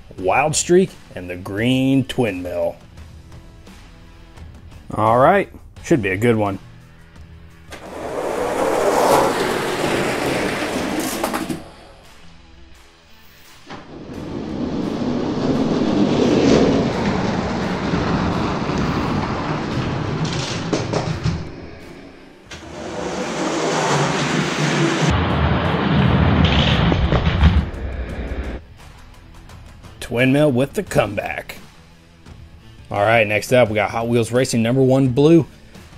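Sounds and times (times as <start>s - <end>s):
background music: 0.0s - 24.4s, 28.0s - 35.9s
toy trucks rolling on plastic track: 7.8s - 11.6s.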